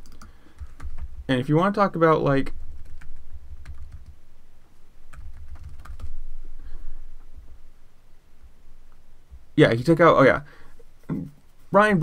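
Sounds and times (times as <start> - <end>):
keyboard typing: 0.0 - 1.1, 2.6 - 4.2, 5.1 - 6.2.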